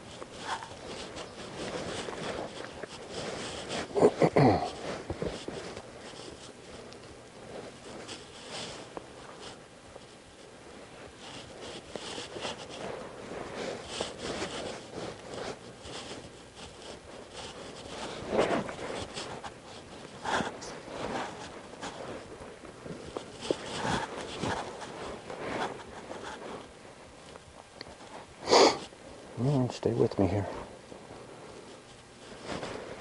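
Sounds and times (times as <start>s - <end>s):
breathy sniffs through nose: 28.4s - 28.9s
man speaking: 29.4s - 30.6s.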